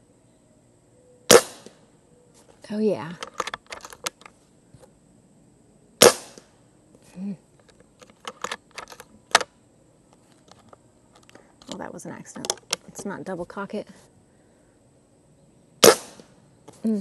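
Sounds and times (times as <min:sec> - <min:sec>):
air rifle shot crack: 0:01.3 - 0:01.8, 0:06.0 - 0:06.5, 0:15.8 - 0:16.4
metallic clicks of rifle action: 0:03.2 - 0:04.3, 0:07.7 - 0:09.5.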